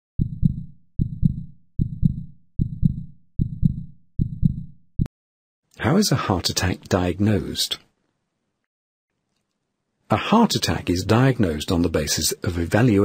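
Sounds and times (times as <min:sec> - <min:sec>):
heartbeat lub-dub: 0:00.2 - 0:05.1.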